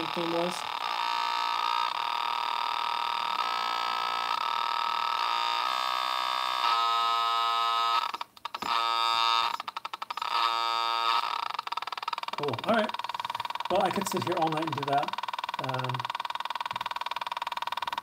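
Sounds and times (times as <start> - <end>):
buzzy square-wave synth drone: 0.0 - 16.1.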